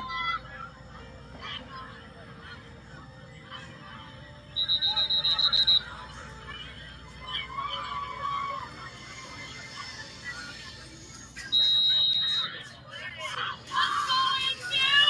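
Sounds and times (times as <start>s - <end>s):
faint voices and crowd: 0.0s - 15.0s
referee's whistle trilling: 4.5s - 6.0s, 11.4s - 12.6s.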